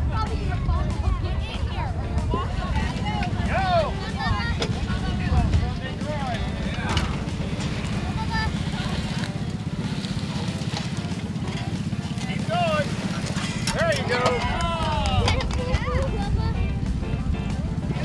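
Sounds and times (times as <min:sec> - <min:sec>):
engine running steadily: 0:00.0 - 0:18.0
voices calling out: 0:00.0 - 0:18.0.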